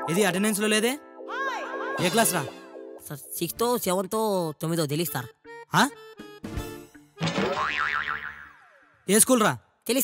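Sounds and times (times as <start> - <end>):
comic boing sound effect: 7.2 - 9.0.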